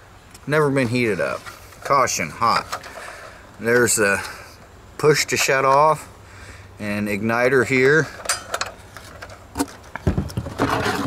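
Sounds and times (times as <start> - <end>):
scraping rustle against cardboard: 10.4 - 11.0.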